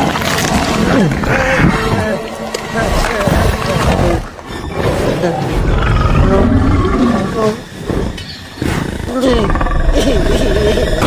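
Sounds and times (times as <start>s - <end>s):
large dinosaur growl: 0.0s - 11.0s.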